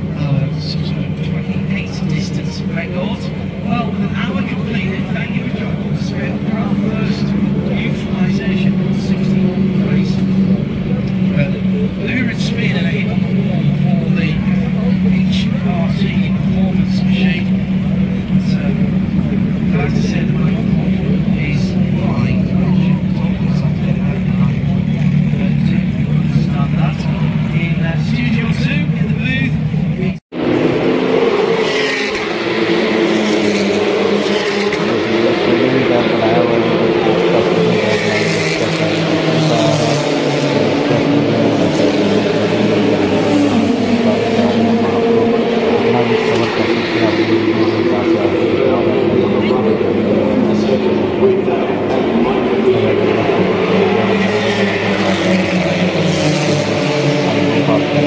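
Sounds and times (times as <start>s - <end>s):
crowd chatter: 0.0s - 58.0s
race car engines droning: 0.0s - 58.0s.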